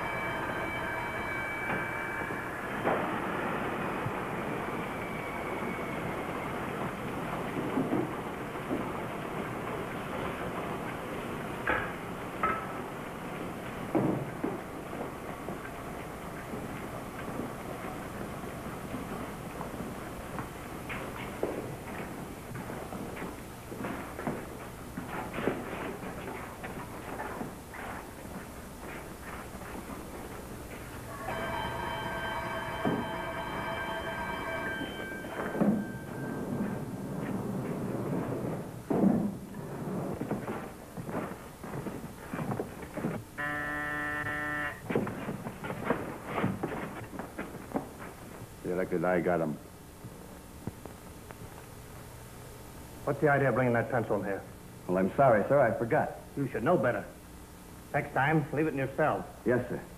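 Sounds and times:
metal workshop knocking and clatter: 0:11.6 - 0:12.9
buzzing metal detector alarm: 0:31.1 - 0:36.3, 0:43.4 - 0:44.9.

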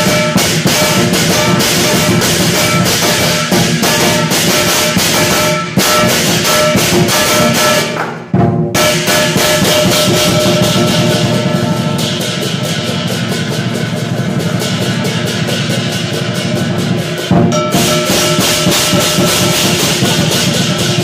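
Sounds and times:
gong ringing: 0:00.0 - 0:08.0, 0:08.8 - 0:21.0
cymbals clashing: 0:00.0 - 0:21.0
large drum beating fast: 0:00.0 - 0:21.0.

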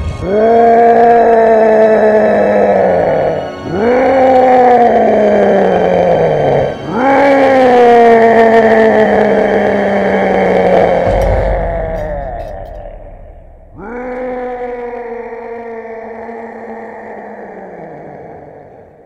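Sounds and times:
monster roaring: 0:00.0 - 0:19.0.

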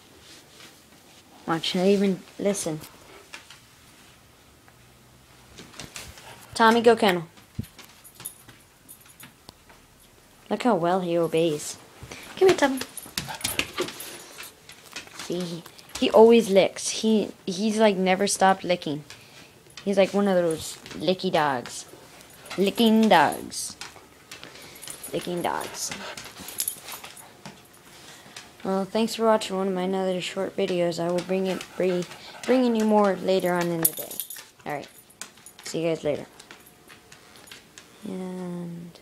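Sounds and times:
dog claws ticking on hard floor: 0:12.1 - 0:16.3, 0:30.6 - 0:37.9.

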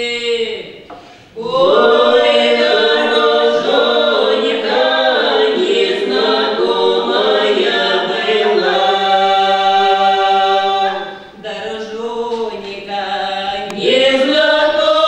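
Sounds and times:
mixed choir singing a cappella: 0:01.2 - 0:15.0.

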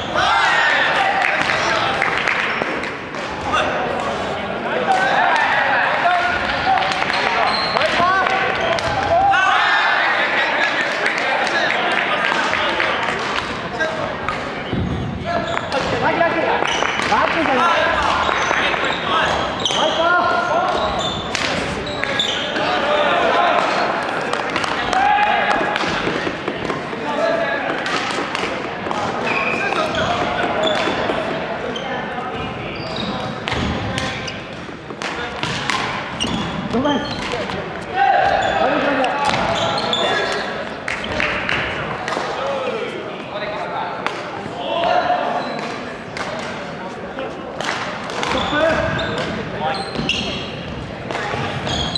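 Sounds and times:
people chatting in echoing gym: 0:00.0 - 0:51.9
sneakers squeaking on floor: 0:06.9 - 0:09.0, 0:14.3 - 0:22.8, 0:27.7 - 0:41.4, 0:44.7 - 0:45.8, 0:48.2 - 0:51.9
rackets striking shuttlecock: 0:33.4 - 0:36.5.

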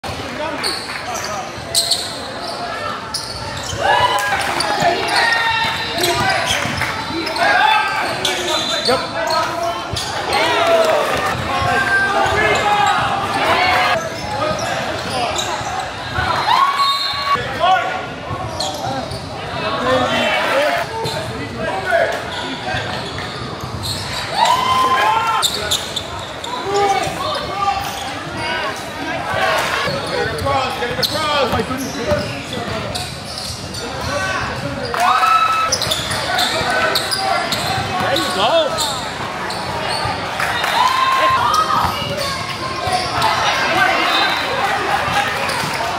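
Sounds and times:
people calling and shouting: 0:00.0 - 0:45.9
voices of players and spectators: 0:00.0 - 0:45.9.

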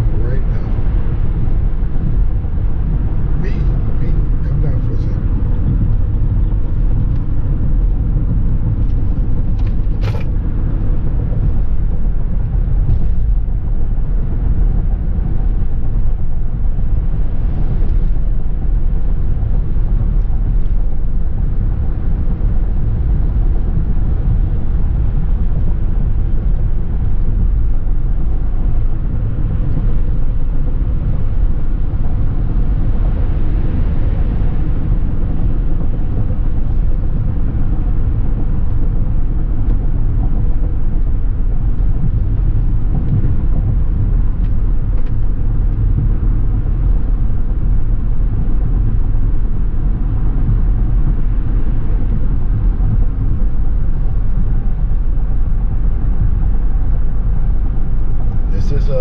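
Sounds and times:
road and engine rumble: 0:00.0 - 0:59.0.

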